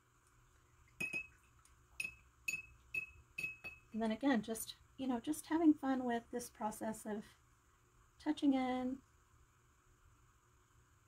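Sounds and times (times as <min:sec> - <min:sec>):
paintbrush clinking against glass jar: 0:01.0 - 0:01.4, 0:02.0 - 0:04.0.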